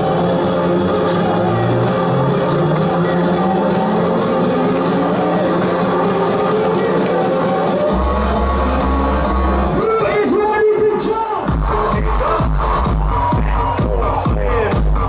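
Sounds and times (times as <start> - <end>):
deep bass: 0.0 - 9.9, 11.4 - 15.0
electronic dance music: 0.0 - 15.0.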